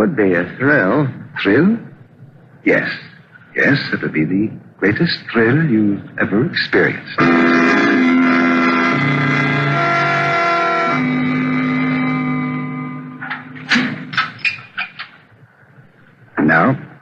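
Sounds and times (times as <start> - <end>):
organ chords: 3.0 - 17.0
sharp knocks: 13.2 - 15.2.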